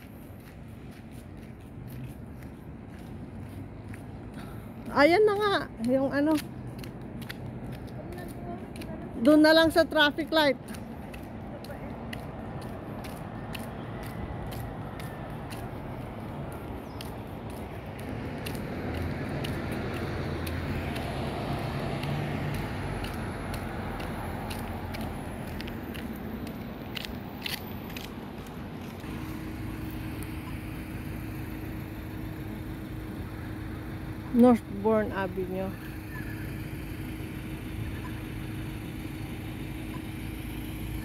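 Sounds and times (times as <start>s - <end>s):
low engine tone: 0.0s - 41.0s
road hum: 0.0s - 41.0s.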